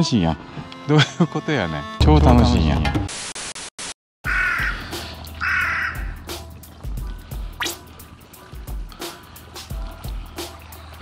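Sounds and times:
harsh animal-call effects: 4.2 - 6.3
background music with steady beat: 4.2 - 11.0.

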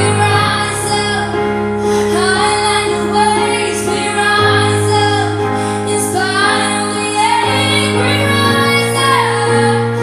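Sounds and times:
sustained accompaniment chords: 0.0 - 10.0
woman singing a slow ballad: 0.0 - 10.0.

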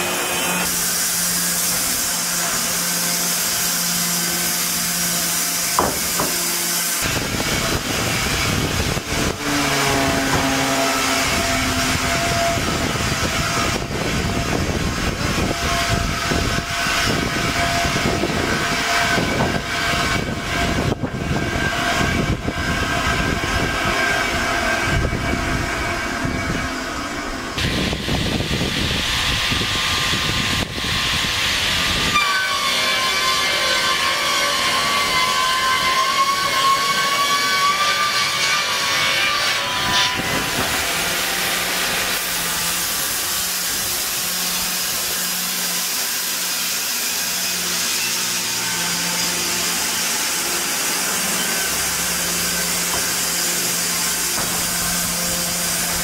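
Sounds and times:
rumbling sawing noise: 0.0 - 56.0
saw motor whine: 0.0 - 56.0.

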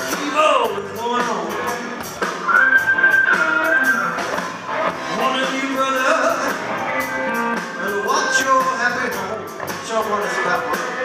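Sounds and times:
bass guitar: 0.0 - 11.0
drums: 0.0 - 11.0
electric guitars: 0.0 - 11.0.

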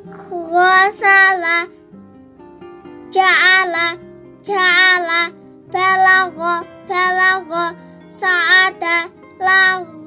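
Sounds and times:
soft musical backing: 0.0 - 10.0.

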